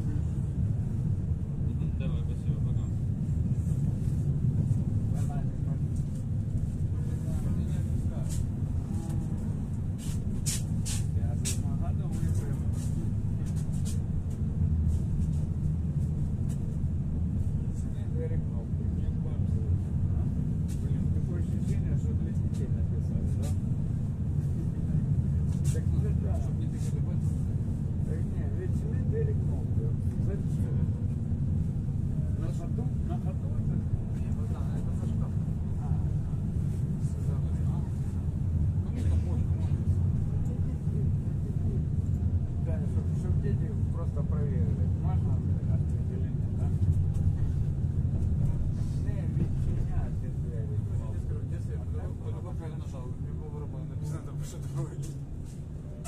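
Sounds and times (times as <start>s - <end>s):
tram running gear rumbling on rails: 0.0s - 56.0s.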